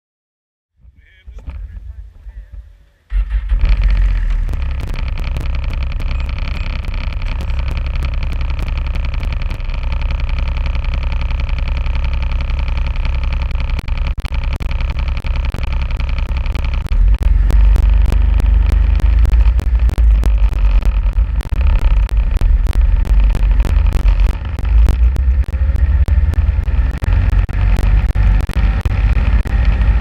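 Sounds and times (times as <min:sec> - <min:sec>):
snowmobile engine idling: 0:01.6 - 0:30.0
sharp clicks: 0:03.1 - 0:30.0.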